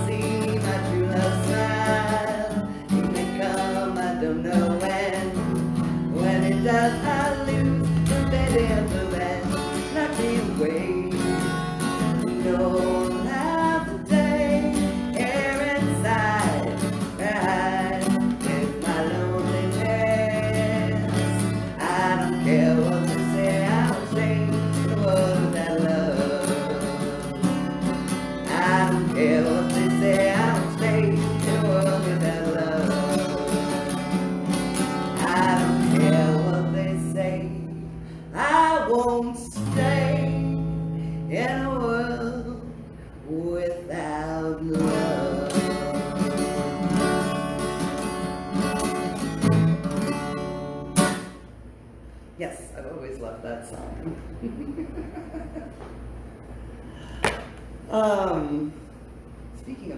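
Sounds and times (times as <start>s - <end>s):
woman singing: 0.0s - 47.7s
acoustic guitar strumming: 0.0s - 52.0s.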